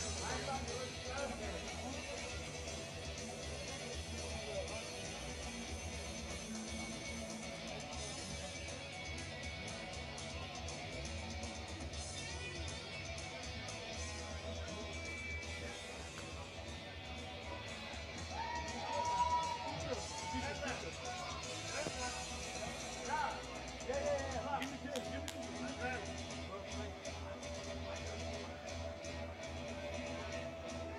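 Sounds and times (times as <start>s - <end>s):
background music: 0.0s - 30.9s.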